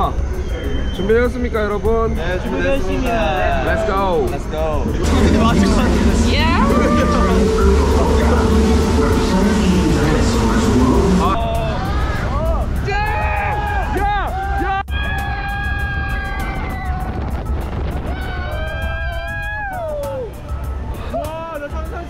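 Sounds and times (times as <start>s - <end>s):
steady low rumble: 4.7s - 12.8s
loud rushing noise: 4.9s - 12.4s
riders screaming and yelling: 11.8s - 17.4s, 18.0s - 20.4s.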